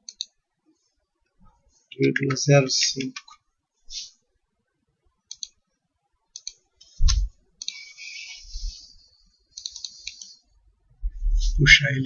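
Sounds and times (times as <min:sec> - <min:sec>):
computer mouse clicks: 0:00.0 - 0:00.4, 0:05.3 - 0:05.6, 0:06.3 - 0:07.8, 0:09.5 - 0:10.4
soft hiss: 0:00.6 - 0:04.4.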